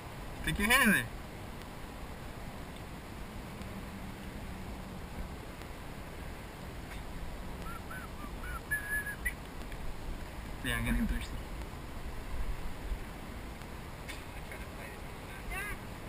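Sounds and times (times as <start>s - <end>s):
low outdoor background noise: 0.0s - 16.0s
bird chirping: 7.6s - 9.4s.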